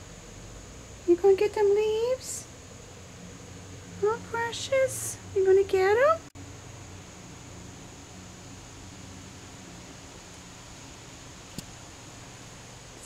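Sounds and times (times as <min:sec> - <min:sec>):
background hiss with low hum: 0:00.0 - 0:13.0.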